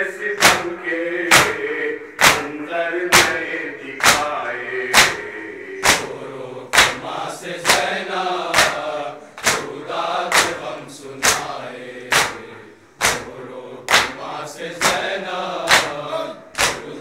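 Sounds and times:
men chanting a lament: 0.0s - 17.0s
men slapping their chests: 0.4s - 0.7s, 1.3s - 17.0s.

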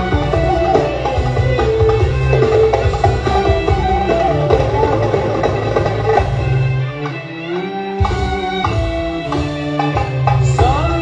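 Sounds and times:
live band with violins and percussion: 0.0s - 11.0s.

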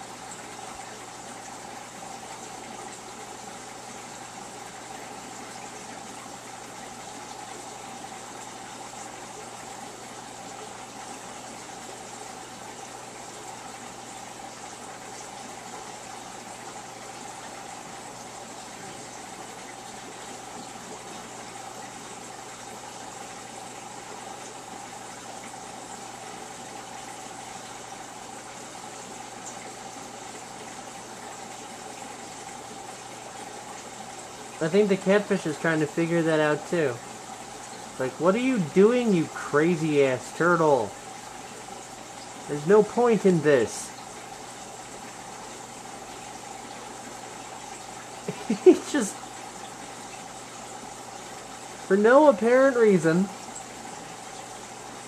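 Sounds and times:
aquarium water pump running: 0.0s - 55.0s.

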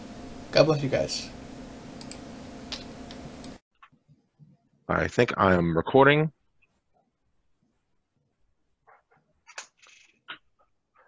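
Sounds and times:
soft clicks: 2.0s - 4.0s.

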